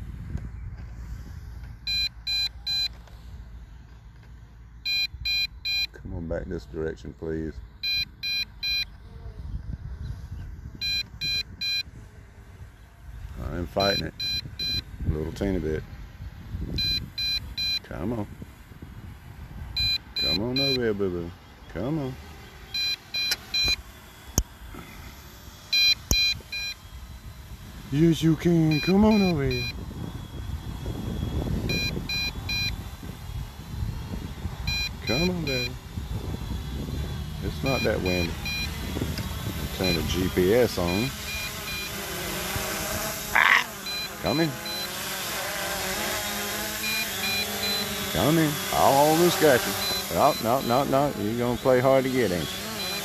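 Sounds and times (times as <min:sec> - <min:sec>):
low wind rumble on microphone: 0:00.0 - 0:02.3, 0:08.8 - 0:20.5, 0:26.1 - 0:41.2
remote controller warning beeps: 0:01.9 - 0:03.0, 0:04.8 - 0:06.0, 0:07.8 - 0:09.0, 0:10.8 - 0:11.9, 0:13.7 - 0:14.9, 0:16.7 - 0:18.0, 0:19.8 - 0:21.1, 0:22.7 - 0:24.4, 0:25.6 - 0:27.2, 0:28.1 - 0:33.0, 0:34.6 - 0:35.9, 0:37.5 - 0:42.0, 0:43.8 - 0:45.1, 0:46.8 - 0:53.0.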